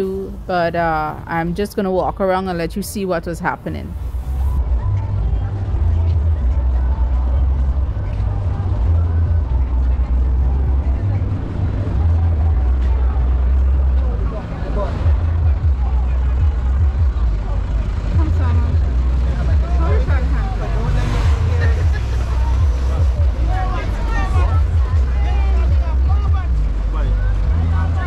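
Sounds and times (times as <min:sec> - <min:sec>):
people chatting: 0:00.0 - 0:04.0, 0:17.3 - 0:28.0
traffic rumble: 0:00.0 - 0:28.0.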